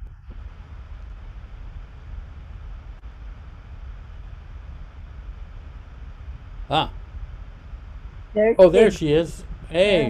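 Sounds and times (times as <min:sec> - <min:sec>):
low rumble with faint hiss: 0:00.0 - 0:10.0.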